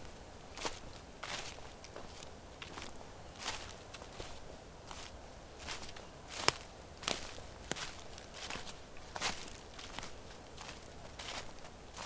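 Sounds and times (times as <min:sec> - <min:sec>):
footsteps on dry grass: 0:00.0 - 0:12.0.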